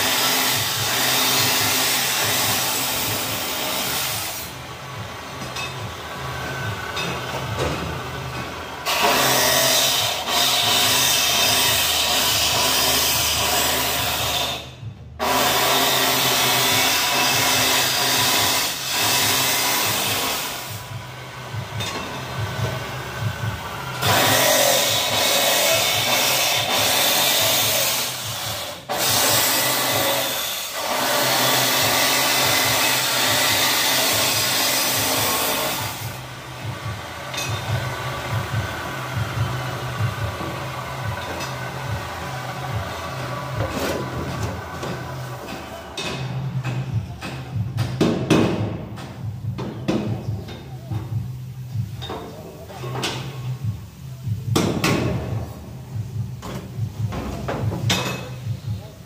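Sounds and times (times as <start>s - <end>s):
angle grinder cutting steel: 0.0s - 4.6s, 8.8s - 20.8s, 23.9s - 36.2s.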